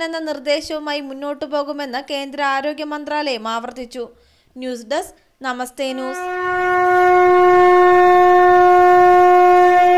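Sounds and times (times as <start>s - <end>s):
horn long note: 5.9s - 9.9s.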